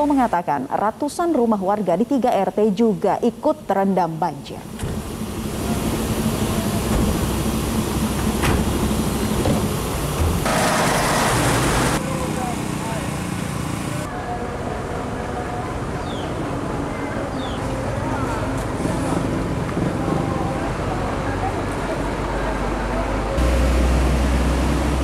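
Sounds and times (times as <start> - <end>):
truck diesel engines humming: 4.6 - 25.0.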